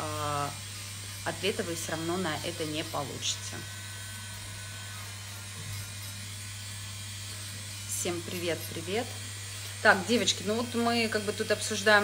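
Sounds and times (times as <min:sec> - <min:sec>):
electric nail drill humming: 0:00.0 - 0:12.0.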